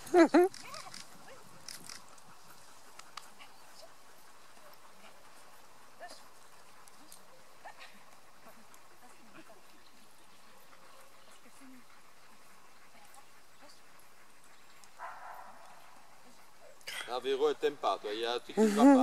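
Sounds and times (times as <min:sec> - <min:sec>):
dog sounds: 0:00.0 - 0:19.0.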